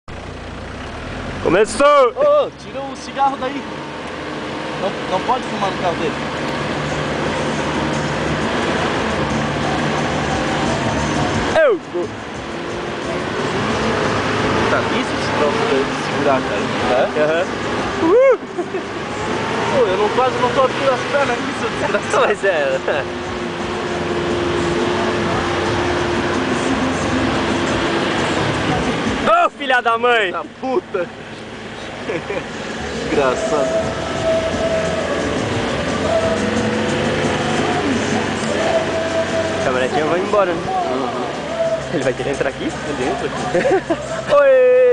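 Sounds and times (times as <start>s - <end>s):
pickup engine droning: 0.1s - 44.9s.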